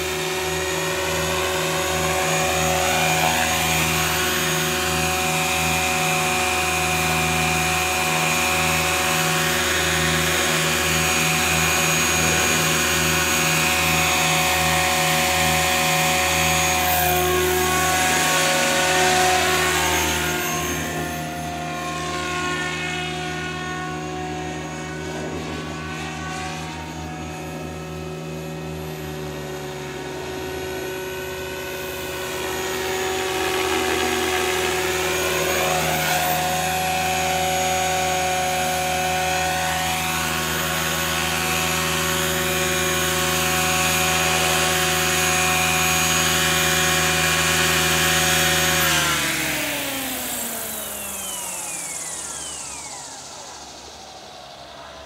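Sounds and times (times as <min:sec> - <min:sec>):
model helicopter rotor whine: 0:00.0 - 0:55.0.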